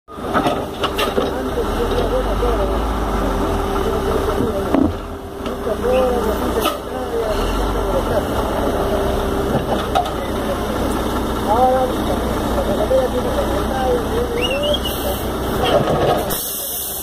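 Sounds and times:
diesel engine running: 0.1 - 17.0
people talking: 0.2 - 17.0
steady whine: 0.6 - 15.7.

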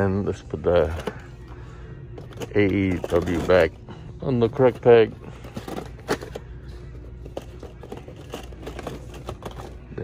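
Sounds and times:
low store hum: 0.0 - 10.0
packaging clicks and crinkles: 4.8 - 10.0.

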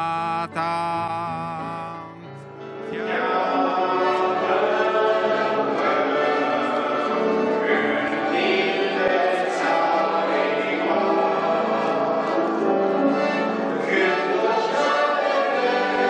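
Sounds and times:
congregation singing a hymn: 2.8 - 16.0.

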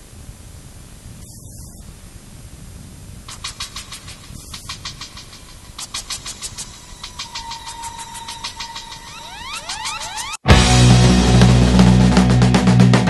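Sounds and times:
rapid electronic ticks: 3.3 - 10.4
steady high tone: 5.9 - 11.6.

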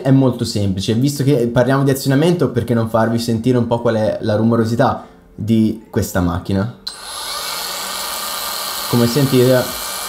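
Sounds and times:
cordless polisher whirring: 6.9 - 10.0.

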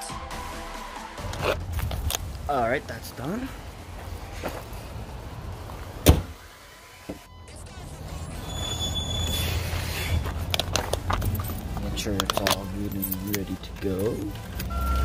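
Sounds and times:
car door slam: 6.0 - 6.4.

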